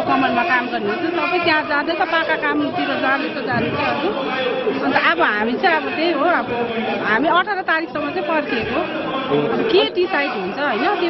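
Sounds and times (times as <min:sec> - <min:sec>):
woman speaking into a microphone: 0:00.0 - 0:04.0, 0:04.8 - 0:08.8, 0:09.7 - 0:11.0
voices chattering: 0:00.0 - 0:11.0.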